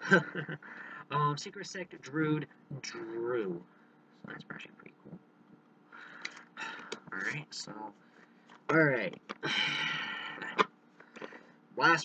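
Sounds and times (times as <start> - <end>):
cards rustling and sliding: 10.5 - 11.4.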